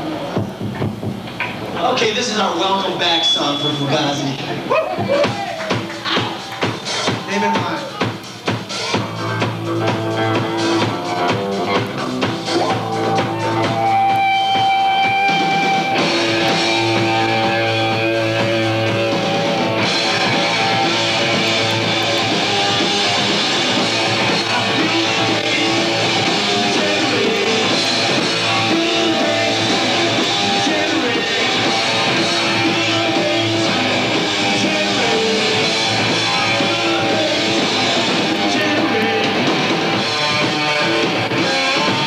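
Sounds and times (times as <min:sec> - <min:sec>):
live rock band playing: 0:03.2 - 0:42.0.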